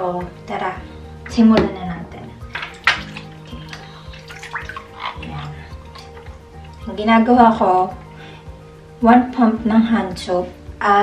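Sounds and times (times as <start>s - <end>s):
background music: 0.0s - 11.0s
water splashing in a sink: 2.4s - 7.1s.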